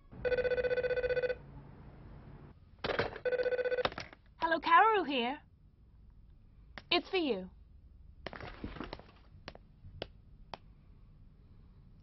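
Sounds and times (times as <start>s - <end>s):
warbling telephone ring: 0.2s - 1.4s, 3.2s - 3.9s.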